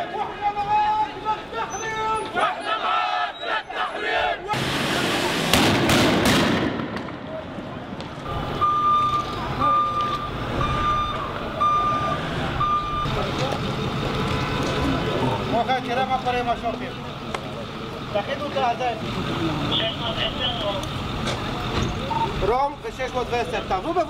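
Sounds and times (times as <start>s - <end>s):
crowd chanting: 0.0s - 4.6s
vehicle engine rumble: 4.5s - 24.0s
loud burst with sharp cracks: 4.6s - 7.4s
vehicle warning beeper: 8.3s - 13.3s, 21.9s - 22.5s.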